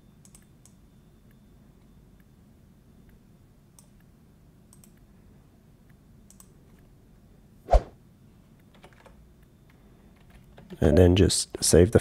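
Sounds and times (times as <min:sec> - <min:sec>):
mouse and keyboard clicks: 0:00.2 - 0:00.8, 0:04.7 - 0:05.1, 0:06.3 - 0:06.9.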